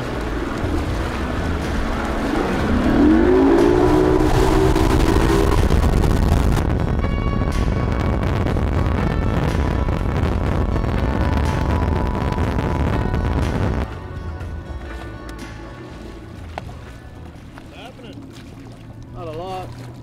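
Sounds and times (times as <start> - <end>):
pitched tone rising: 0.0 - 6.6
background music: 0.0 - 19.4
outboard motor running at speed: 0.0 - 20.0
rushing water: 0.0 - 20.0.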